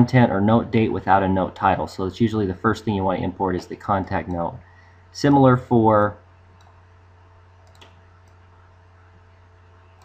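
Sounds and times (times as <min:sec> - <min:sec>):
faint low hum: 0:00.0 - 0:10.0
computer mouse click: 0:06.6 - 0:06.8, 0:07.6 - 0:08.4.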